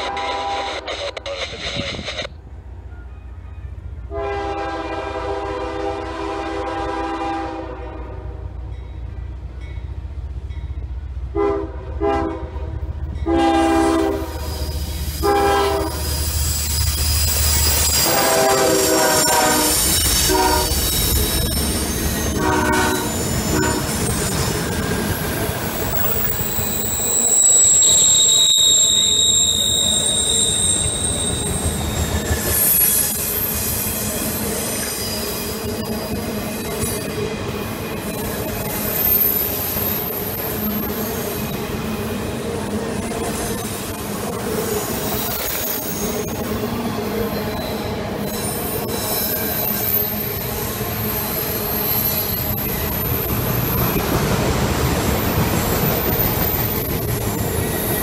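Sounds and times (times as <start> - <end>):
train horn blasts: 0.0 - 0.9, 4.1 - 8.6, 11.3 - 14.5, 15.2 - 16.0, 18.0 - 20.9, 22.3 - 24.1
diesel locomotive rumble: 0.0 - 34.5
rail cars rumbling and clattering: 0.0 - 58.0
high-pitched wheel squeal: 14.2 - 37.1, 47.2 - 54.0.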